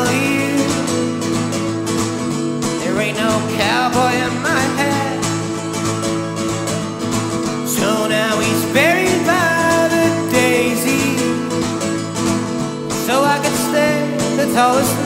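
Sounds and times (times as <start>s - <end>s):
man singing: 0.0s - 1.5s, 2.6s - 5.9s, 7.5s - 12.1s, 12.8s - 15.0s
acoustic guitar plucked: 0.0s - 15.0s.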